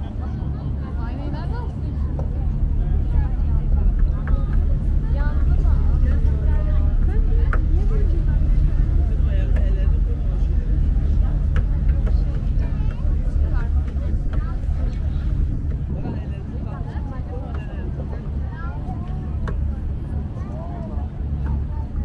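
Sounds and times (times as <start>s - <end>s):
ferry engine rumble: 0.0s - 22.0s
passengers chattering: 0.0s - 22.0s.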